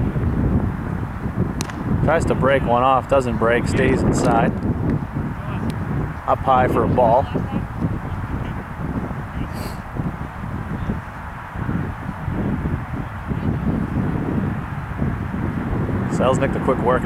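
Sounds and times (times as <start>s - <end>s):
low outdoor rumble: 0.0s - 17.0s
faint hiss: 9.4s - 10.0s.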